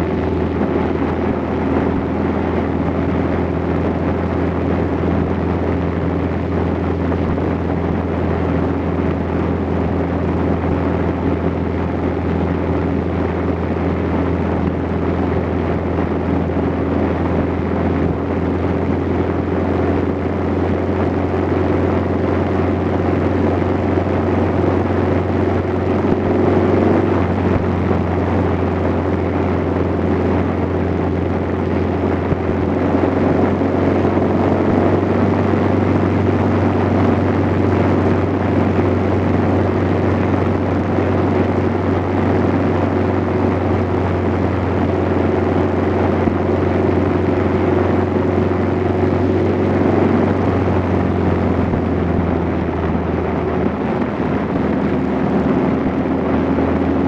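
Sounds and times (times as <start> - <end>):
road and wind noise: 0.0 - 57.0
vehicle engine running: 0.0 - 57.0.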